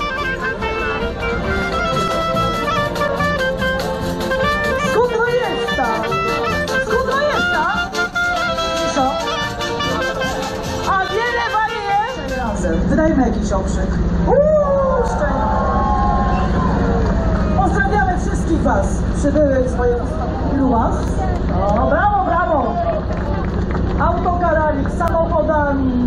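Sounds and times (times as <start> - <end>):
clarinet melody: 0.0 - 12.7
accordion: 0.0 - 13.4
double bass: 0.0 - 26.0.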